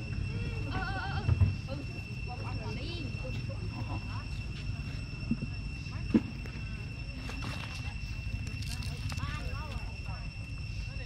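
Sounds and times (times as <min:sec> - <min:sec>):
steady high-pitched whine: 0:00.0 - 0:11.0.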